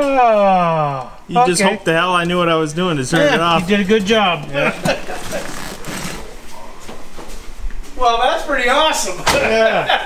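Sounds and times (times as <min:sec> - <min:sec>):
rustling and shuffling: 0:03.1 - 0:08.1.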